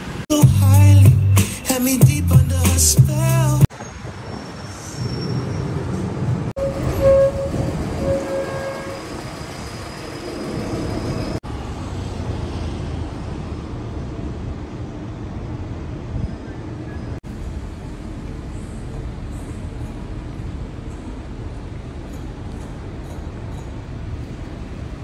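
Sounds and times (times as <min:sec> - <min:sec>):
vehicle rumble: 0:00.0 - 0:25.0.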